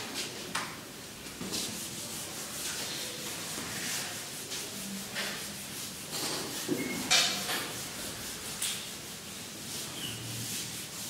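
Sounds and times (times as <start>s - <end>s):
eraser rubbing on whiteboard: 1.4s - 11.0s.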